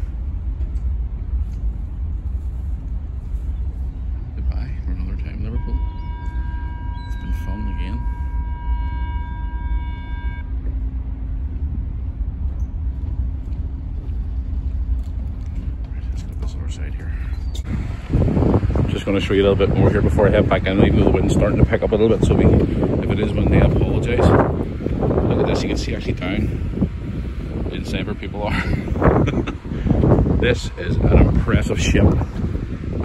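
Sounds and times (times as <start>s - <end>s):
low steady ferry rumble: 0.0s - 33.0s
wind buffeting microphone: 0.0s - 33.0s.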